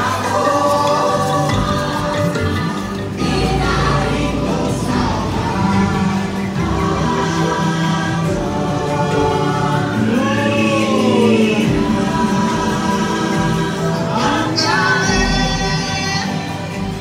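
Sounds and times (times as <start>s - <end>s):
high rising sweep: 0.0s - 14.5s
ambient musical score: 0.0s - 17.0s
wordless choir singing: 0.0s - 17.0s.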